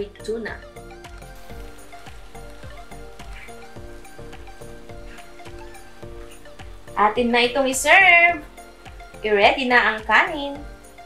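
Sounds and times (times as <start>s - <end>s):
background music with steady beat: 0.0s - 11.0s
food sizzling in a pan: 0.1s - 11.0s.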